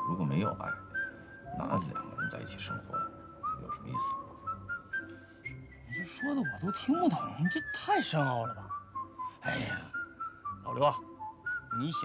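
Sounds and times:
high whistle-like melody: 0.0s - 12.0s.

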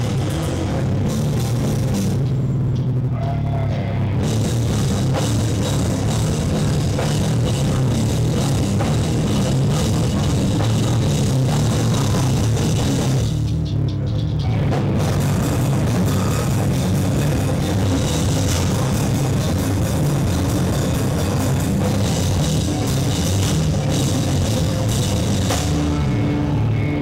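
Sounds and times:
heavy band playing distorted: 0.0s - 27.0s.

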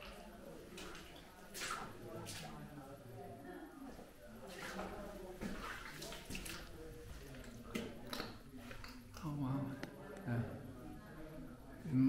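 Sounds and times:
footsteps splashing through water: 0.0s - 2.6s, 4.4s - 8.9s.

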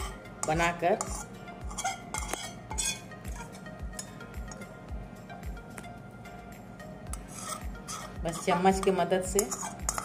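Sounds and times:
spoon scraping steel bowl: 0.0s - 4.6s, 7.1s - 10.0s.

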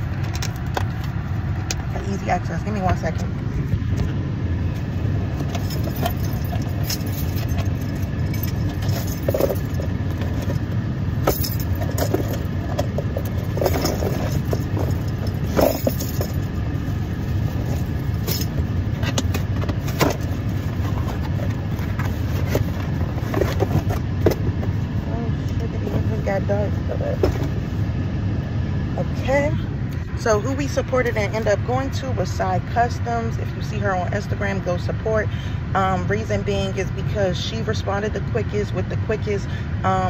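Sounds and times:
steady low rumble: 0.0s - 40.0s.

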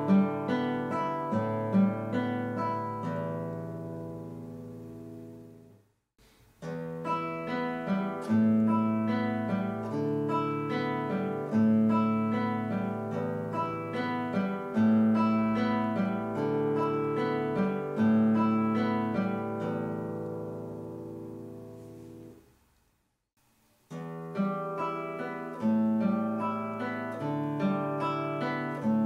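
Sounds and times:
classical guitar fingerstyle: 0.0s - 22.5s, 23.8s - 29.0s.

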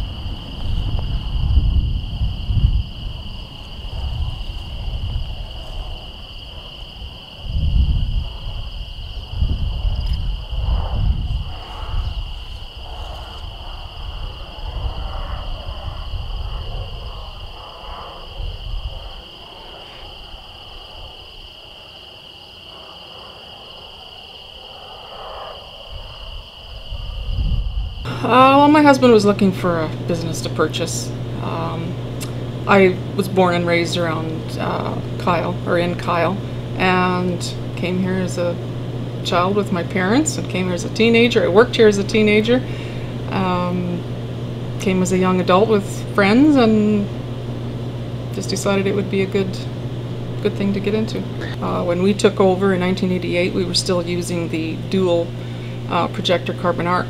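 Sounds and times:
insects trilling: 0.0s - 57.0s
wind rumbling on microphone: 0.0s - 57.0s.

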